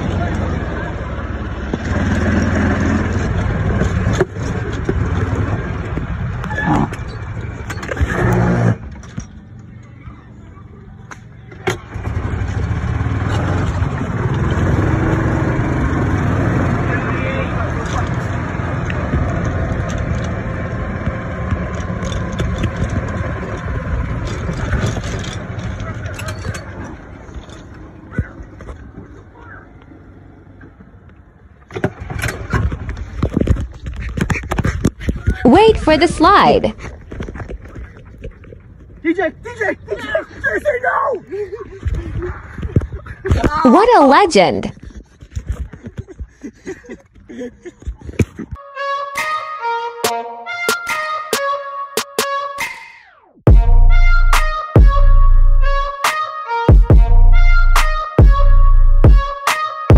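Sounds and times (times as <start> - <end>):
golf cart motor humming: 10.9 - 33.8.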